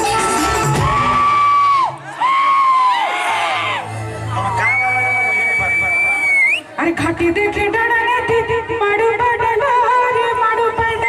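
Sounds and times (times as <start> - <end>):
vocal whoops through pa: 0.7 - 3.7, 4.5 - 6.6.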